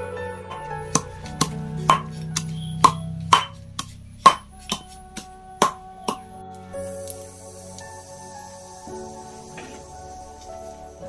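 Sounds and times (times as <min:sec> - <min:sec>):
pestle pounding in a mortar: 0:01.0 - 0:05.8.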